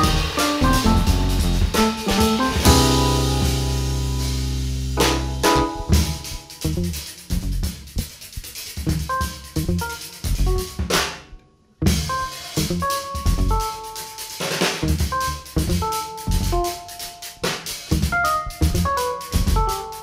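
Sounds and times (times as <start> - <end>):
jazz trio playing: 0.0 - 20.0.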